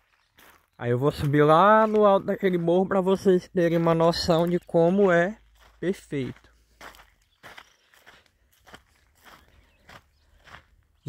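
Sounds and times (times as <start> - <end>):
footsteps on dry dirt: 0.0 - 11.0.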